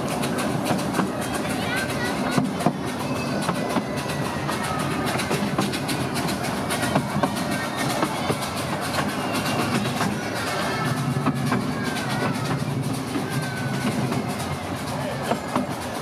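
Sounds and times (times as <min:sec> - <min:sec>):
miniature steam train running: 0:00.0 - 0:16.0
train wheels clattering on track: 0:00.0 - 0:16.0.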